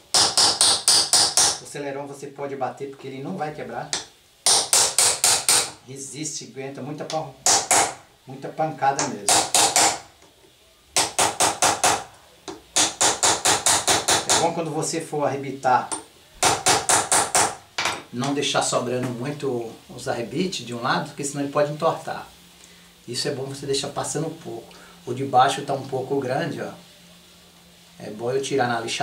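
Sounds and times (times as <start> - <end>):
small hammer striking metal rivets: 0.1 - 1.6, 3.9 - 5.8, 7.4 - 8.0, 9.0 - 10.0, 15.9 - 18.1.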